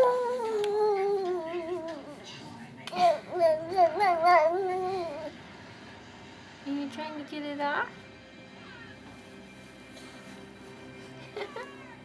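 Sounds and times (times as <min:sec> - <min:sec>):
baby drawn-out vocal sound: 0:03.0 - 0:05.3.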